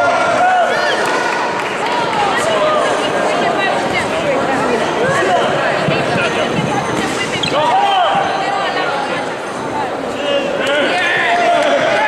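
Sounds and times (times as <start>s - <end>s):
spectators' voices and shouts: 0.0s - 12.0s.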